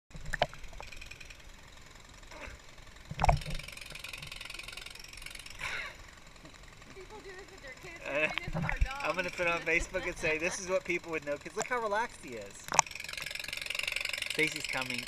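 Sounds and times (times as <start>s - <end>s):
small clicks: 12.6s - 14.1s.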